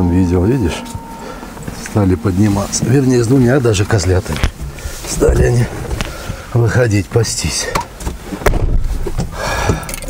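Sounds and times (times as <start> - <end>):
low rumble: 0.0 - 6.6
knocks and handling noise: 4.2 - 6.5, 7.7 - 10.0.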